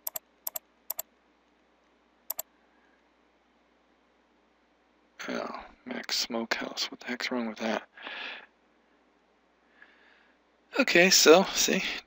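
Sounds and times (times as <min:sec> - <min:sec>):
computer mouse clicks: 0:00.0 - 0:01.0
faint steady hiss: 0:00.0 - 0:12.0.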